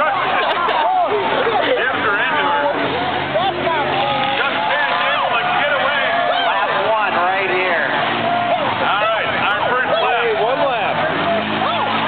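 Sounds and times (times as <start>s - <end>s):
crowd talking and calling out: 0.0s - 12.0s
race car engines running: 0.0s - 12.0s.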